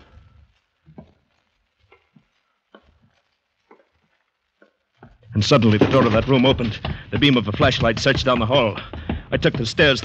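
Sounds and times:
soft footsteps on stairs: 0:05.0 - 0:10.0.

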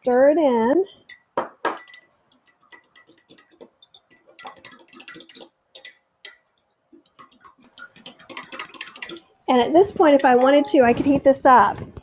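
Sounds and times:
spoon clinking against glass: 0:01.0 - 0:06.5, 0:07.2 - 0:09.2.

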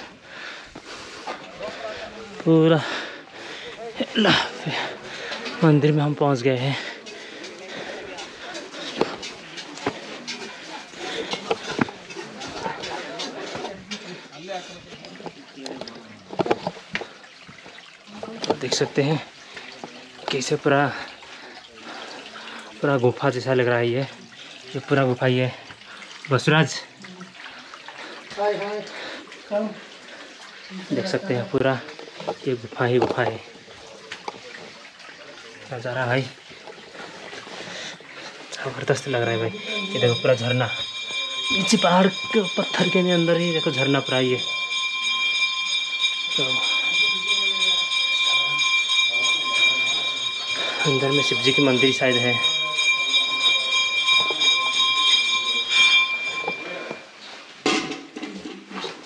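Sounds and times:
water rushing among boulders: 0:00.0 - 0:52.4
person speaking: 0:38.6 - 0:45.2, 0:46.2 - 0:57.1
metal bell ringing: 0:38.6 - 0:58.1.

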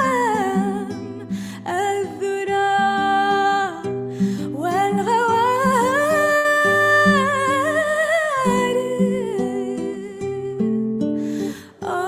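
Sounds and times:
woman singing wordless melody: 0:00.0 - 0:12.0.

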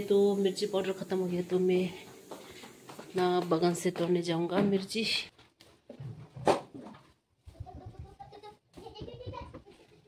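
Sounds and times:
footsteps on wooden floor: 0:01.9 - 0:10.0.

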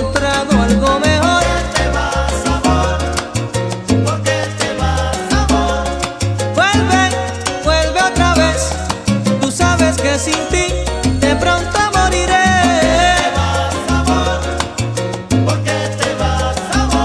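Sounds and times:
instrumental salsa music: 0:00.0 - 0:17.0.

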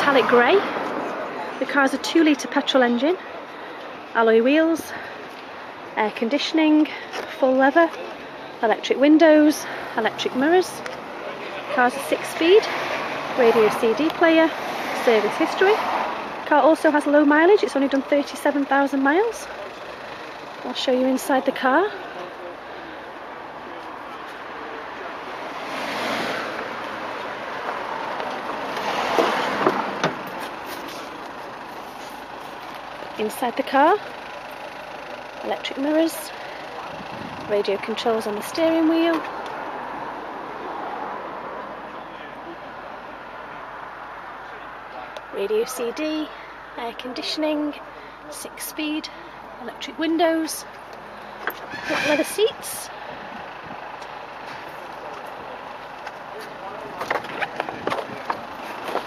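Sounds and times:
passing road traffic: 0:00.0 - 0:59.0.

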